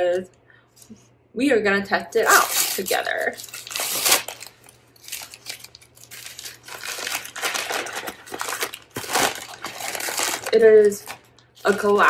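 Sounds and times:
crinkly packaging being torn: 2.2 - 12.0.

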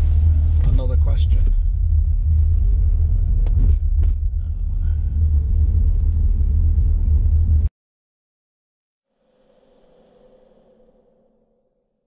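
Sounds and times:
car rumble from inside cabin: 0.0 - 7.7.

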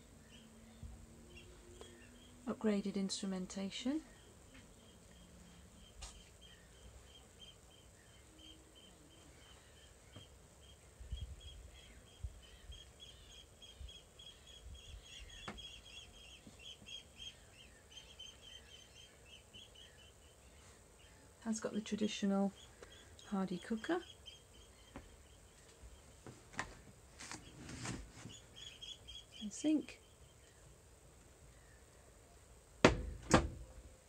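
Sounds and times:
small bird chirping: 4.1 - 26.3, 27.3 - 30.7.

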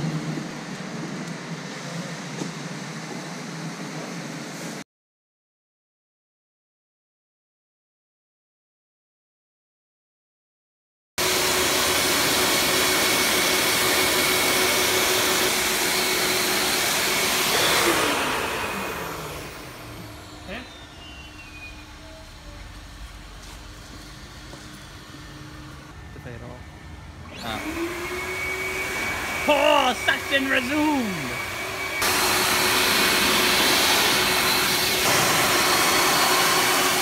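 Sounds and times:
air blower dryer whining: 11.2 - 37.0.

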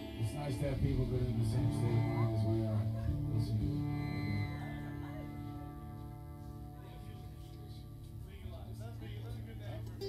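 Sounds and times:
bass guitar notes: 0.0 - 10.0
electric guitar notes: 0.0 - 10.0.

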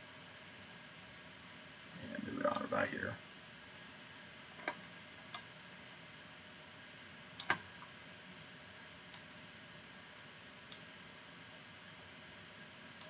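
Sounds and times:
faint room hiss: 0.0 - 13.0
computer mouse clicking: 4.6 - 5.5, 7.4 - 7.9, 9.1 - 9.3, 10.7 - 10.9.

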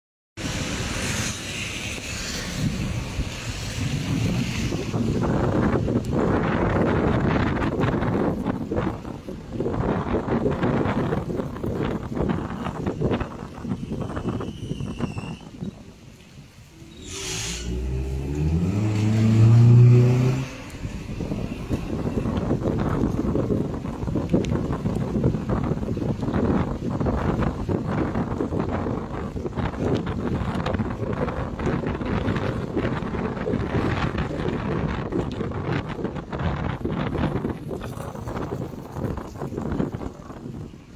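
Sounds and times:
tyres on wet road: 0.4 - 40.9
wind: 0.4 - 40.9
car engine revving: 16.7 - 22.4.

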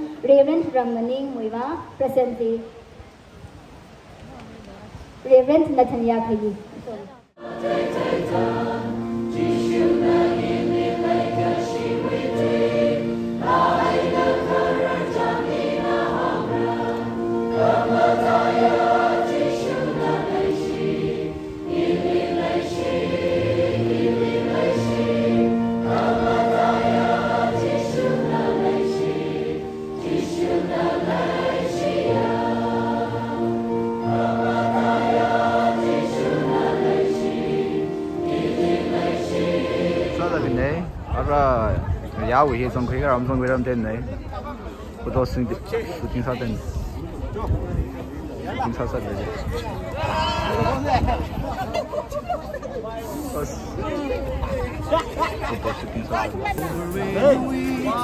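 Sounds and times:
large choir singing held chords: 7.3 - 41.2, 54.5 - 58.0.

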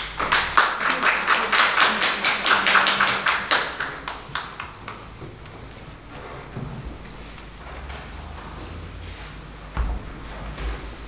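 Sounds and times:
audience applause: 0.0 - 5.5.

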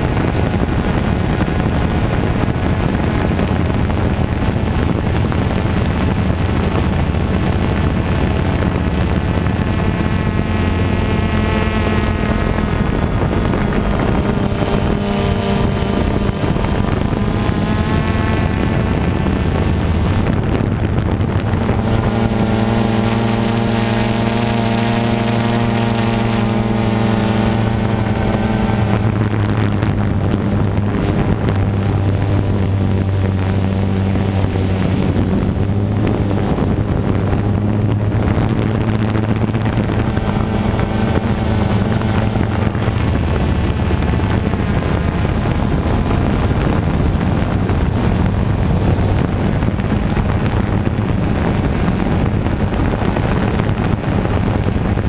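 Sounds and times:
drone propellers buzzing whine: 0.0 - 55.0.

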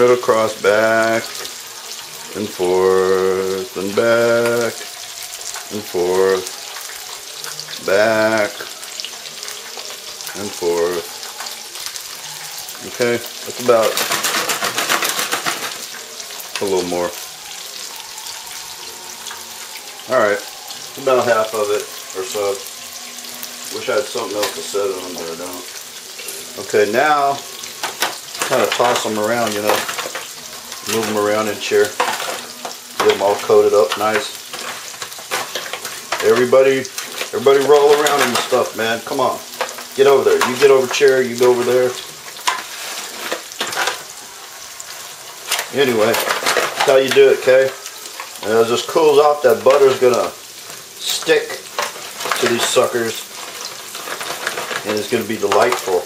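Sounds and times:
oil sizzling in a pot: 0.0 - 56.0.

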